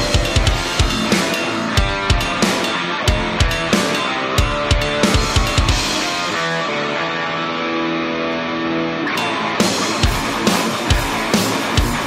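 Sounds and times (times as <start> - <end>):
drums: 0.0 - 8.1, 9.0 - 12.0
distorted electric guitar: 0.0 - 12.0.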